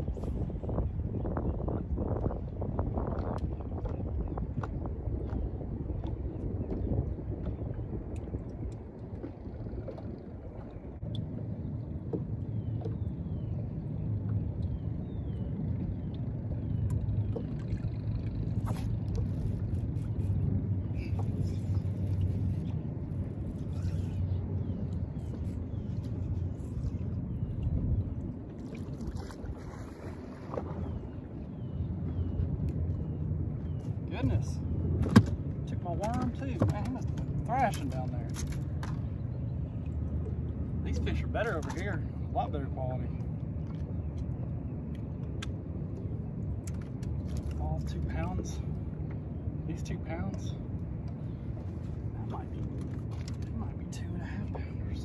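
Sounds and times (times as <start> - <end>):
boat noise: 0.0 - 55.0
wind rumble: 0.0 - 55.0.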